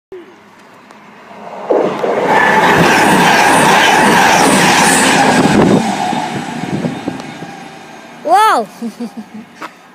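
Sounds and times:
train passing at high speed: 0:00.4 - 0:09.9.

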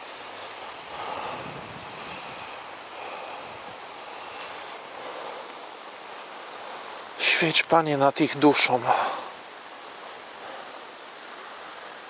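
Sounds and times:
outdoor background rush: 0:00.0 - 0:12.0.

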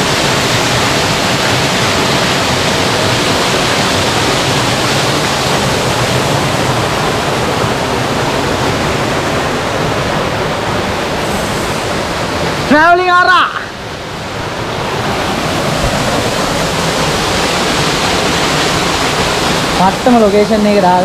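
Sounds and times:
waterfall rushing: 0:00.0 - 0:21.0.

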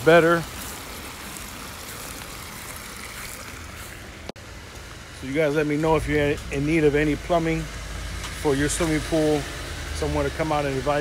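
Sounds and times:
water pouring into pool: 0:00.0 - 0:04.3.

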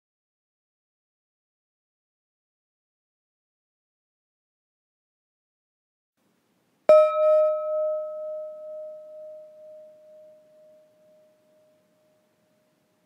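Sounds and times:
meditation gong ringing: 0:06.9 - 0:12.6.

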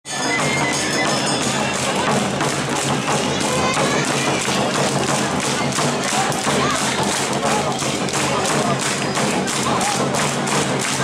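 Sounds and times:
drums beating fast rhythm: 0:00.0 - 0:11.0
dancers shouting calls: 0:02.8 - 0:10.2.

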